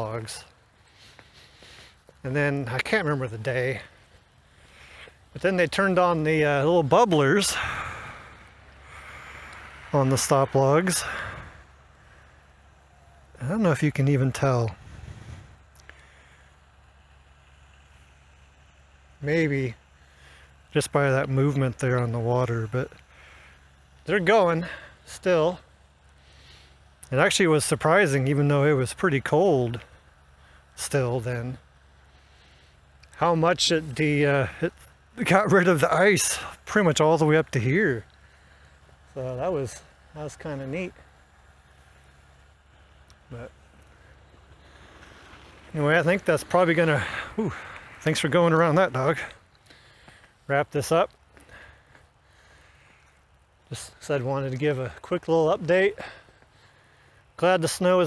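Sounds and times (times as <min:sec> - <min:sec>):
distant machinery hum: 0:00.0 - 0:58.0
faint low rumble with hiss: 0:00.0 - 0:58.0.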